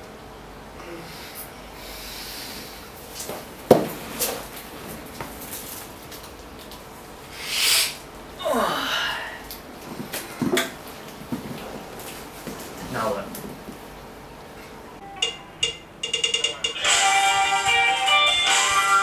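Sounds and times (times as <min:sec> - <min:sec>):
drawn-out vocal reaction: 0:07.7 - 0:09.6.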